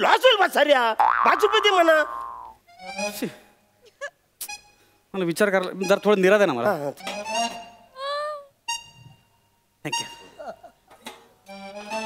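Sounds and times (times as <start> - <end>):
background music: 2.2 - 3.8, 4.4 - 10.7, 11.4 - 12.0.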